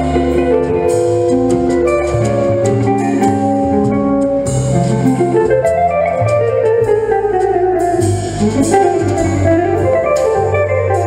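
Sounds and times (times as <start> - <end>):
bass notes: 0.0 - 11.0
guitar melody: 0.0 - 11.0.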